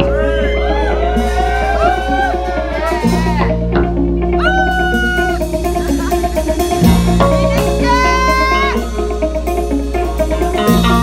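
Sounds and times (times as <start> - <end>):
live rock band: 0.0 - 11.0
sustained bass notes: 0.0 - 11.0.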